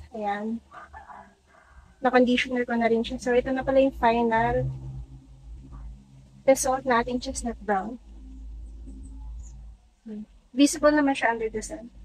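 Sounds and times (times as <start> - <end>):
wind rumble on microphone: 2.9 - 9.7.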